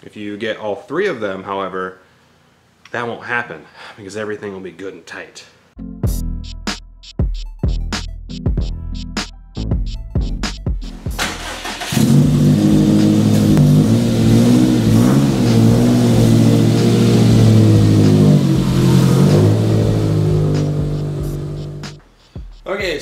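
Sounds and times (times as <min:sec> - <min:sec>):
music: 0:05.8 - 0:13.6, 0:14.8 - 0:23.0
car engine running: 0:11.2 - 0:22.0.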